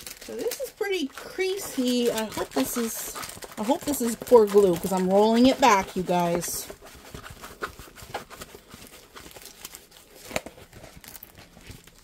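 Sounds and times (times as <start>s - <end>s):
plastic cover sheet crinkling: 0.0s - 12.0s.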